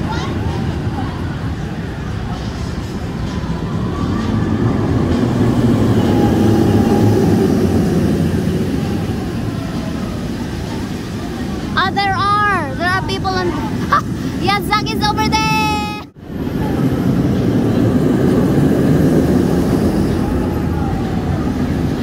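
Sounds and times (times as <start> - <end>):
roller coaster rumbling on track: 0.0 - 22.0.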